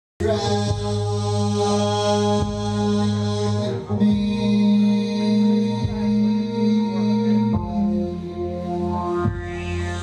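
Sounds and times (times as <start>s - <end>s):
droning chant-like music: 0.2s - 10.0s.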